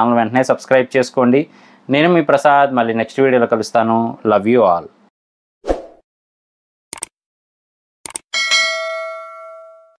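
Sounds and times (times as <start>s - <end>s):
bright bell ding: 8.3s - 10.0s.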